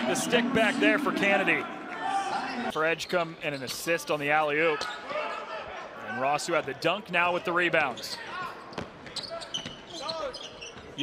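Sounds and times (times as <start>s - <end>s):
sneaker squeaks: 8.0s - 11.0s.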